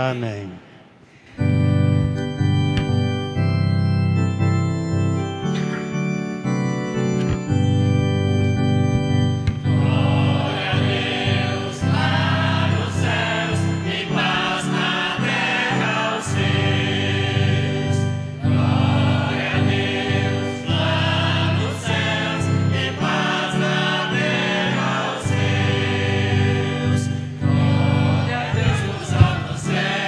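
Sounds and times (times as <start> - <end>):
organ-like keyboard chords: 0.9 - 30.0
choir singing: 9.4 - 30.0.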